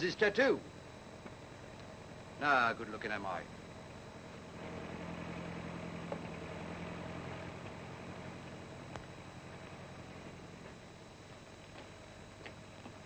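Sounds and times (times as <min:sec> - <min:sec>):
engine humming: 0:00.6 - 0:13.0.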